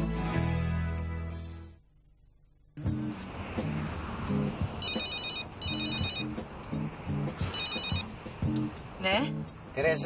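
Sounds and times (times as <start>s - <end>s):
background music with plucked notes: 0.0s - 1.8s, 2.8s - 9.7s
phone ringing electronic trill: 4.8s - 6.4s, 7.5s - 8.1s.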